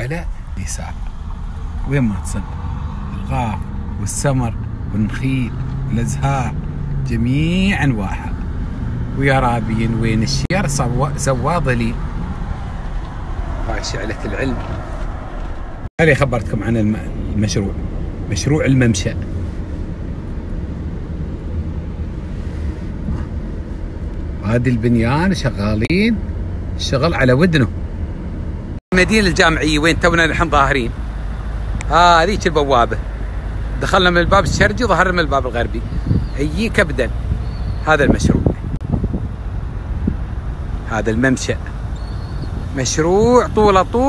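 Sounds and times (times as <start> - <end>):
car cabin engine and road rumble: 0.0 - 44.0
wind on microphone: 35.8 - 40.5, 42.0 - 43.8.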